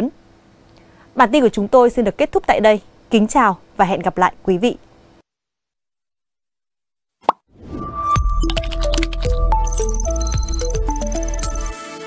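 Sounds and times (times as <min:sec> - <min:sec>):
electronic jingle: 0:07.6 - 0:11.8.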